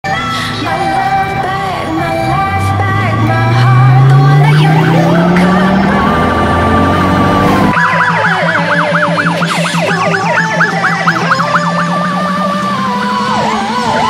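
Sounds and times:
electronic siren wailing and yelping: 4.2 - 14.0.

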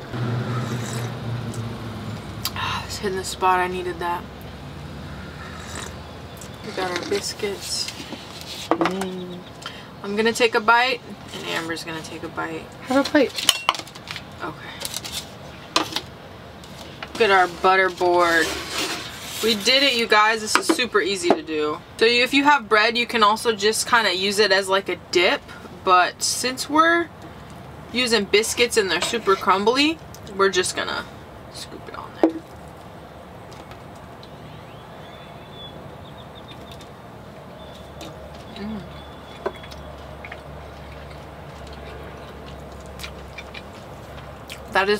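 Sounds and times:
low background rumble: 0.0 - 12.8.

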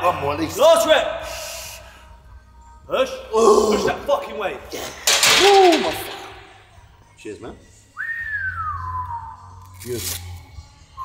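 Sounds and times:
man whistling falling note: 8.0 - 9.6.

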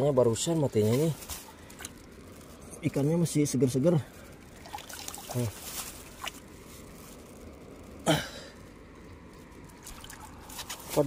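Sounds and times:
stream water trickling: 0.0 - 11.0.

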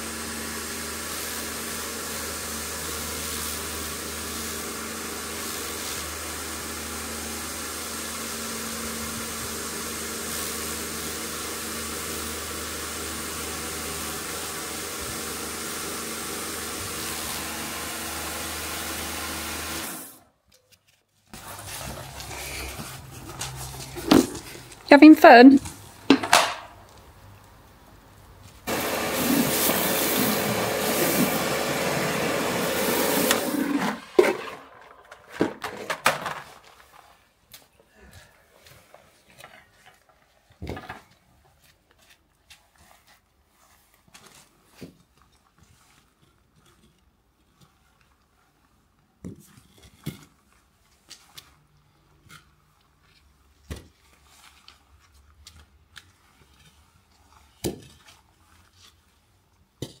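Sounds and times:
pressure washer running: 0.0 - 20.2, 28.7 - 34.7
plant pots scraping on paving: 21.4 - 24.9.

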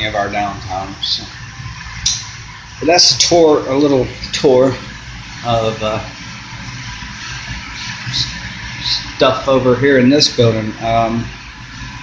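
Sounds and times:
machinery low hum: 0.0 - 12.0.

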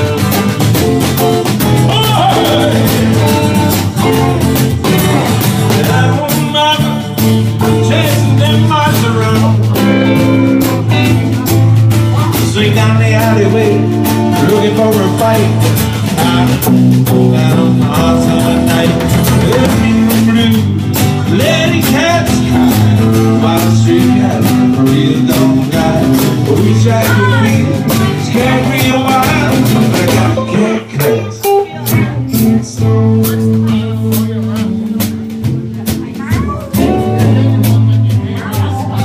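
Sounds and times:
drum kit: 0.0 - 39.0
electric guitar lead line: 0.0 - 39.0
strummed acoustic guitar: 0.0 - 39.0.

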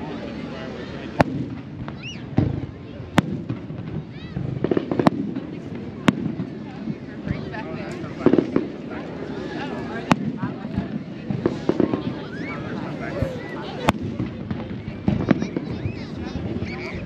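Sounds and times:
fireworks bursting: 1.0 - 17.0
fireworks popping: 1.1 - 17.0.

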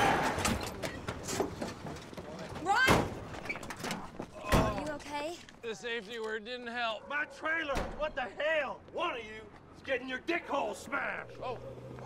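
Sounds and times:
light clatters and knocks: 0.4 - 4.9.

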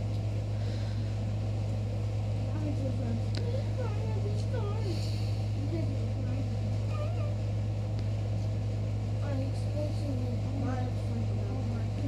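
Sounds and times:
steady low hum: 0.0 - 12.0
faint voice: 2.5 - 7.4.

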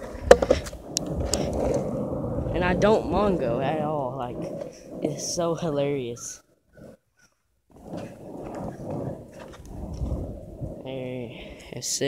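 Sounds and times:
skateboard wheels rolling on pavement: 0.0 - 7.0, 7.7 - 12.0.

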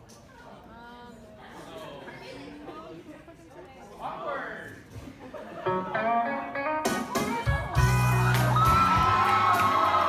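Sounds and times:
plucked guitar notes: 5.6 - 9.2.

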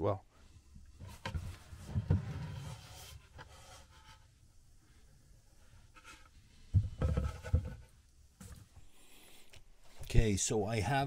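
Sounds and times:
panel scraping and knocks: 1.0 - 4.2, 6.8 - 8.0
faint rubbing: 1.0 - 10.0.

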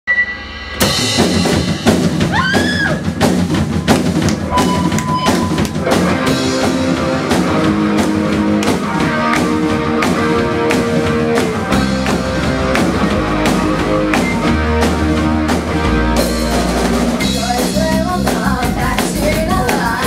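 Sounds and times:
rock band playing live: 0.1 - 20.0
held electric guitar notes: 4.2 - 17.4.

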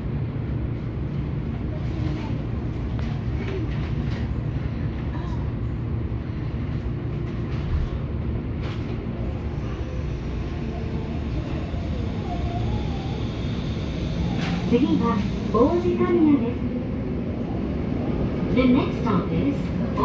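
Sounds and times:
subway train rumbling: 0.0 - 20.0.

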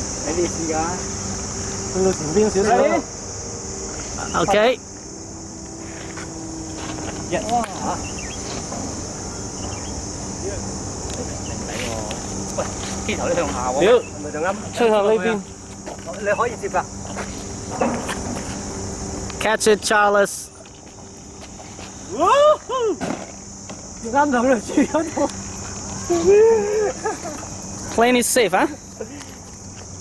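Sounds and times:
high-pitched insect chorus: 0.0 - 30.0
bird chirps: 7.9 - 10.0
person exclaiming: 22.1 - 23.0, 26.0 - 27.2.

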